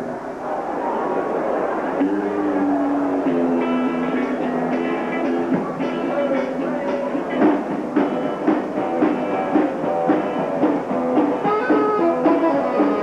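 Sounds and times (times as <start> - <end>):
rockabilly band playing: 1.2 - 13.0.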